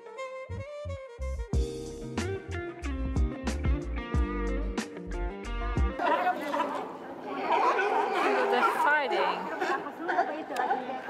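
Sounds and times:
chatter of many voices: 0:06.0 - 0:11.0.

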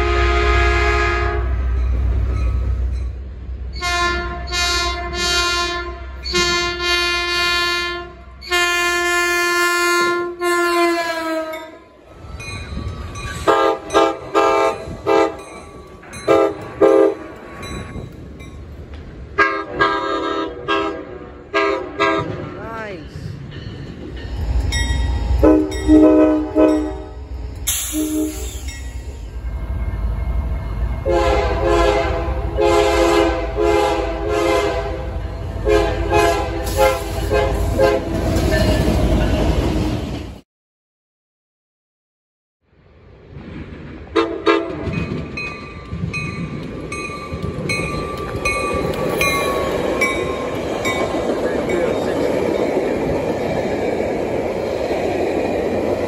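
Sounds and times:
train horn blasts: 0:00.0 - 0:01.6, 0:03.8 - 0:11.9, 0:13.5 - 0:15.4, 0:16.2 - 0:17.2, 0:19.4 - 0:22.6, 0:25.4 - 0:27.2, 0:27.8 - 0:28.5, 0:31.0 - 0:38.2, 0:44.1 - 0:45.0
low rumble of train: 0:00.0 - 0:40.4, 0:42.7 - 0:56.0.

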